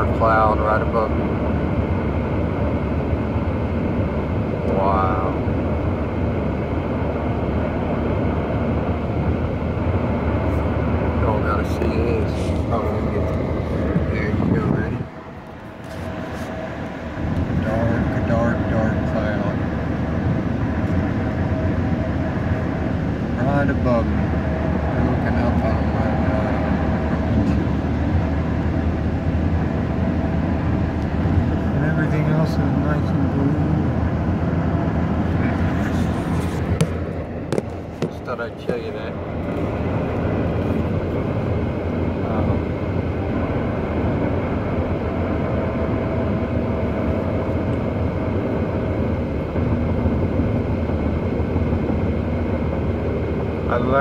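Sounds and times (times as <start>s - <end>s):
car cabin road and wind noise: 0.0s - 54.0s.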